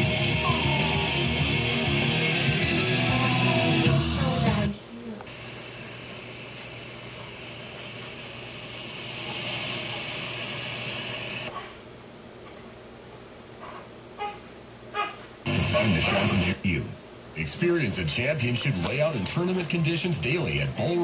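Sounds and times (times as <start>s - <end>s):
radio static hiss: 0.0s - 11.5s, 15.4s - 21.0s.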